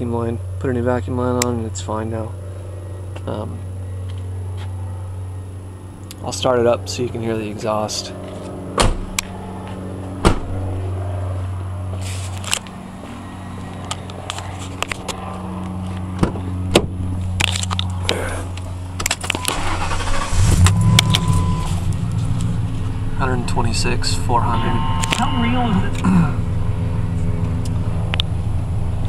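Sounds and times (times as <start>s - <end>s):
truck engine starting and idling: 17.4s - 25.0s.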